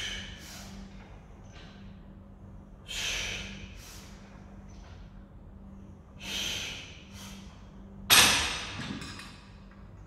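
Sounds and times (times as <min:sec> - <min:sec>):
forceful breathing out: 0:02.8 - 0:04.3, 0:06.2 - 0:07.5.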